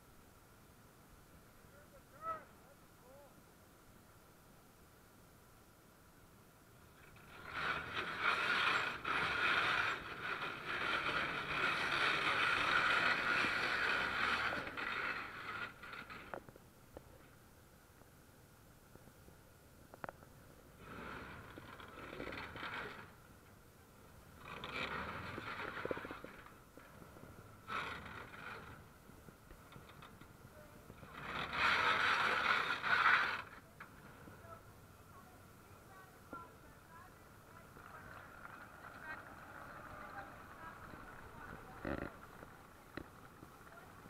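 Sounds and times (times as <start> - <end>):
steel tracks scraping: 6.8 - 17.4, 20.5 - 34.7, 35.8 - 44.0
tank diesel engine revving: 7.0 - 16.3, 24.4 - 28.9, 30.9 - 34.2.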